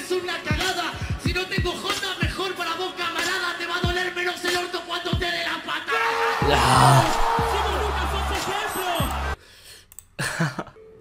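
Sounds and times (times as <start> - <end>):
hip hop beat with heavy bass: 0.0 - 9.4
crowd noise: 6.4 - 9.4.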